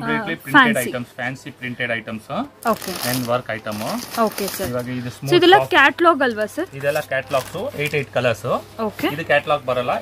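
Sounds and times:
plastic packaging rustling: 2.6s - 5.7s, 6.3s - 8.1s.

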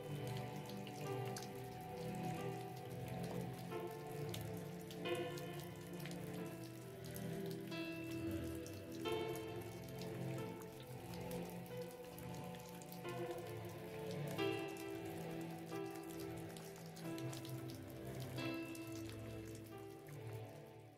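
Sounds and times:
rain falling: 0.0s - 20.9s
soft ambient music: 0.0s - 20.9s.

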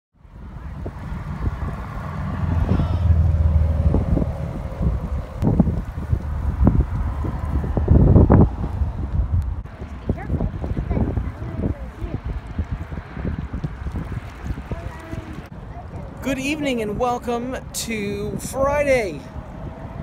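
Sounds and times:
wind buffeting microphone: 0.2s - 20.0s.

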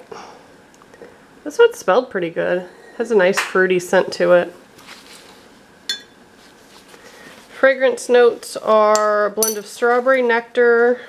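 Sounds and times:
metal utensil clinking on stone: 9.0s - 9.7s.

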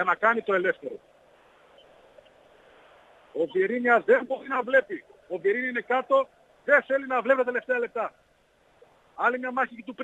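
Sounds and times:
faint steady background hiss: 0.0s - 10.0s.

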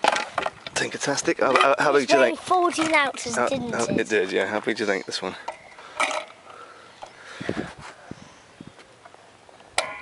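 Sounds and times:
faint rustles: 5.3s - 9.6s.

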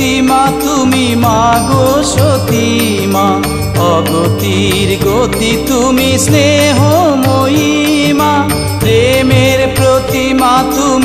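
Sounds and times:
devotional song with ornamented melody: 0.0s - 11.0s
steady drum beat: 0.0s - 11.0s.

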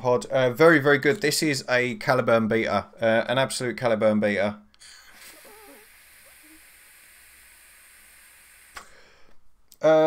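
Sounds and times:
vape draw hiss: 4.8s - 9.0s
small click: 8.7s - 8.9s.

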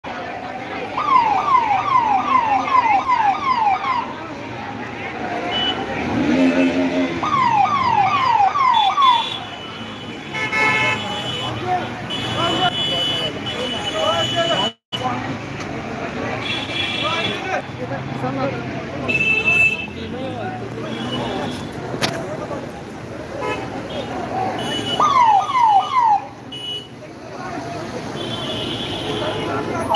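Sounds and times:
people's voices: 0.0s - 29.9s
police siren wailing: 0.9s - 4.2s, 6.5s - 9.3s, 25.0s - 26.3s.

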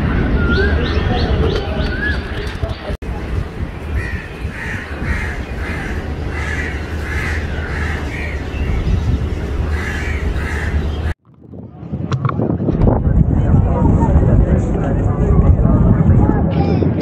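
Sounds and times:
crows cawing: 4.0s - 8.4s, 9.7s - 10.8s.

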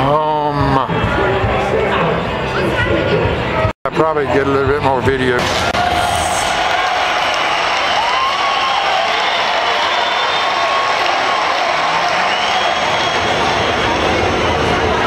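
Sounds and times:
crowd babble: 0.0s - 15.0s.

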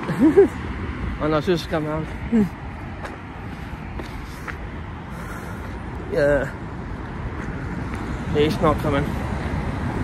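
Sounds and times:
wind rumble on microphone: 6.9s - 10.0s.

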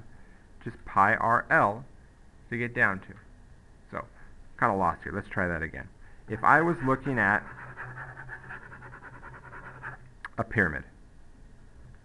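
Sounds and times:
low steady hum: 0.0s - 12.0s
pen scribbling on paper: 6.3s - 10.0s.

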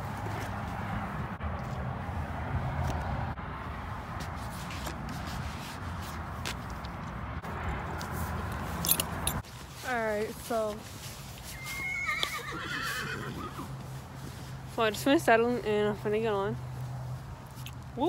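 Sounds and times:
rustling and rubbing on microphone: 4.1s - 6.9s, 8.0s - 11.8s.

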